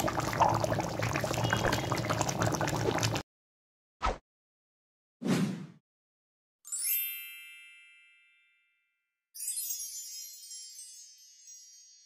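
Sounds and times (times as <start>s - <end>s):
bell-like ding: 7.1s - 9.0s.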